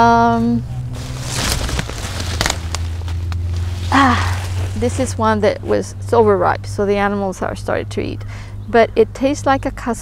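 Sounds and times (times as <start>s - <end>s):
steady low rumble: 0.0s - 10.0s
leaves and twigs rustling: 0.6s - 5.9s.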